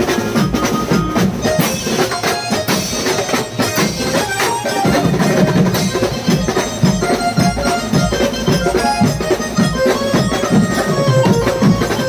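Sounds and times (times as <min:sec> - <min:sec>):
drums beating driving rhythm: 0:00.0 - 0:12.0
loud held melody line: 0:00.0 - 0:12.0.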